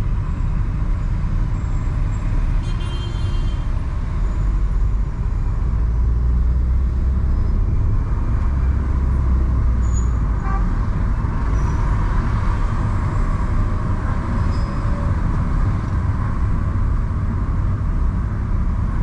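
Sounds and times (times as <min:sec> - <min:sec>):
car driving in traffic: 0:00.0 - 0:19.0.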